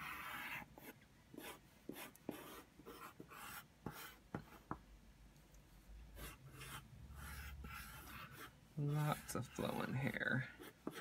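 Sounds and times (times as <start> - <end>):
pencil scratching on paper: 0.0 - 4.8, 5.8 - 11.0.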